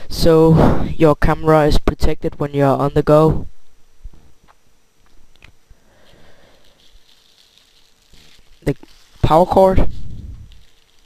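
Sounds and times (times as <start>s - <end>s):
plastic bag crinkling: 5.9s - 11.0s.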